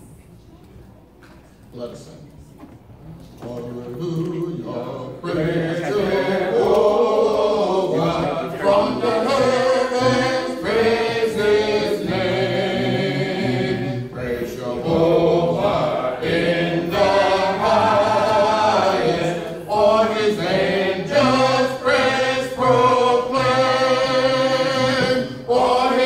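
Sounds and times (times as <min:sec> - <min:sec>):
congregation singing a hymn: 0:03.4 - 0:26.0.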